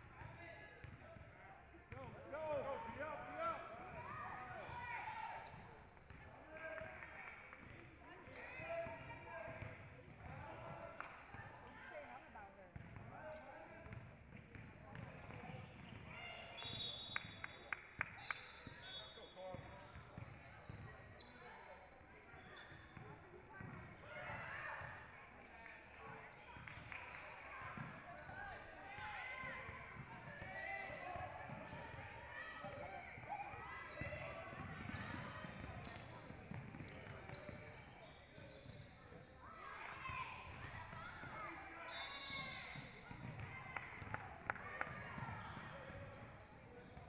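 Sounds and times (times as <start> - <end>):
sneakers squeaking: 33.5 - 44.1.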